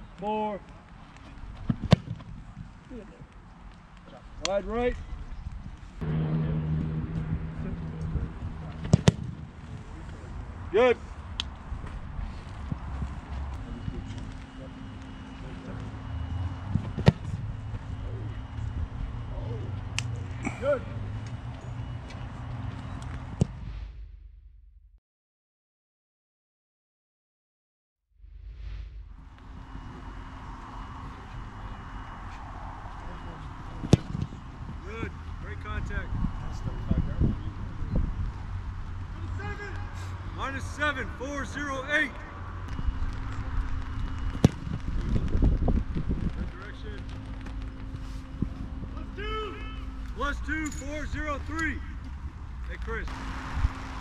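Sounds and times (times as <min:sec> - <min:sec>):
foot kicking football: 0:01.4 - 0:02.8, 0:08.8 - 0:09.5, 0:16.7 - 0:17.4, 0:44.3 - 0:45.4
wind rumble on microphone: 0:05.0 - 0:14.4, 0:28.2 - 0:39.1, 0:42.6 - 0:49.1
steady low hum: 0:05.0 - 0:25.0, 0:28.2 - 0:39.1, 0:42.2 - 0:54.0
sharp crack: 0:06.0 - 0:09.4
voices: 0:06.0 - 0:11.5, 0:12.7 - 0:22.9, 0:30.9 - 0:44.6, 0:46.2 - 0:53.2.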